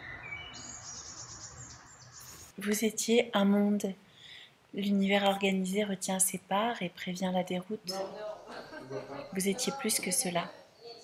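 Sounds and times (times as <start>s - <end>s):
birds chirping: 0.0s - 2.9s
outdoor hiss: 0.6s - 6.6s.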